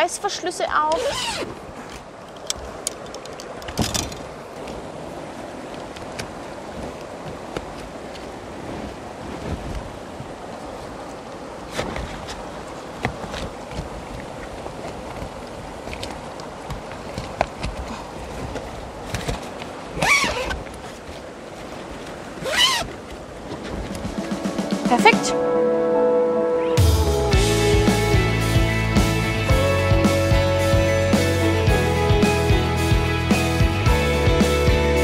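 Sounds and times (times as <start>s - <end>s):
whitewater river rushing: 0.0s - 35.0s
light clicks and rustles: 1.7s - 4.8s.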